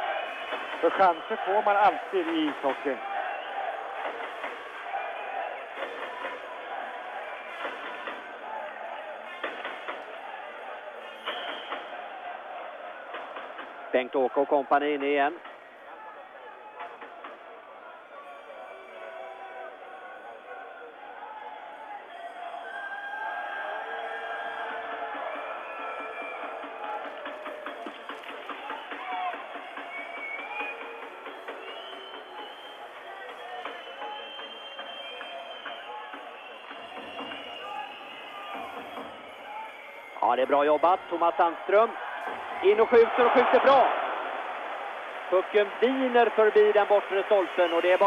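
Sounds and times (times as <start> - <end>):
crowd chanting and singing: 0.0 - 48.0.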